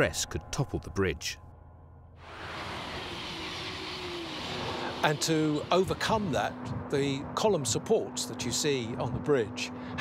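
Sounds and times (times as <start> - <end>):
train passing at speed: 2.2 - 7.8.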